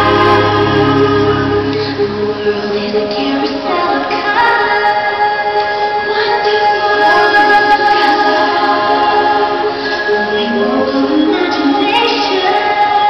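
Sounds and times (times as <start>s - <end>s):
choir singing long notes: 0.0s - 3.0s.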